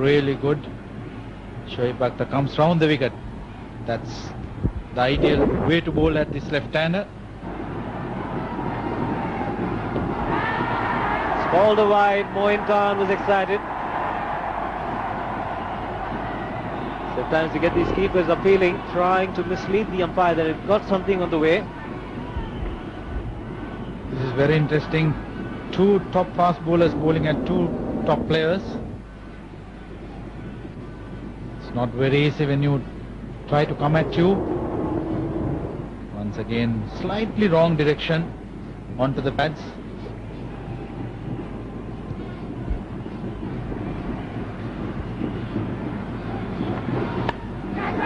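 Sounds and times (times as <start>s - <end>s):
low rumble: 4.3s - 11.6s, 25.2s - 37.6s
stadium crowd murmur: 7.1s - 37.5s, 39.7s - 48.0s.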